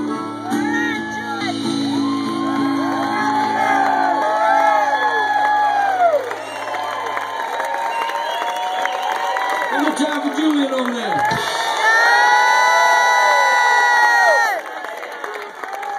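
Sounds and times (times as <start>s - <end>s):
audience cheering and whooping: 0.5s - 15.9s.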